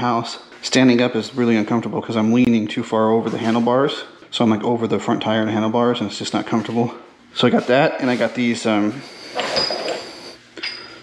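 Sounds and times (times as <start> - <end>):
metal brackets clinking: 9.4 - 11.0
metal clatter with high ring: 9.4 - 11.0.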